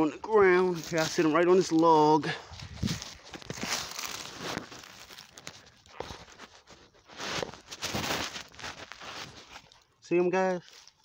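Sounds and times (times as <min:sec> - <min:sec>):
dry leaves rustling and crunching: 0:00.6 - 0:11.0.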